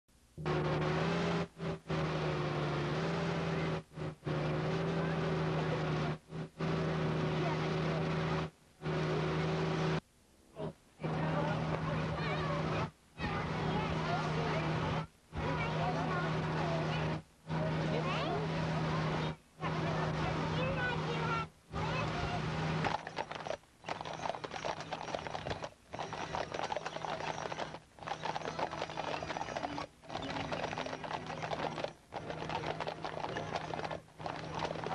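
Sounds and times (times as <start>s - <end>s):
low buzzing hum with hiss: 0.1s - 34.9s
horse hooves clip-clopping on asphalt: 22.8s - 34.9s.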